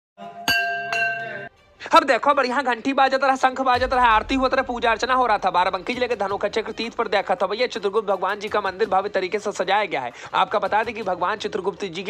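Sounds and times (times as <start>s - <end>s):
metal bell struck with mallet: 0.4s - 1.5s.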